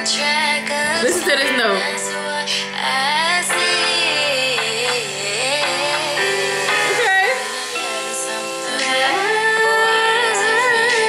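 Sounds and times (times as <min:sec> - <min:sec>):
woman singing: 0:00.0 - 0:11.0
sustained chords: 0:03.5 - 0:10.9.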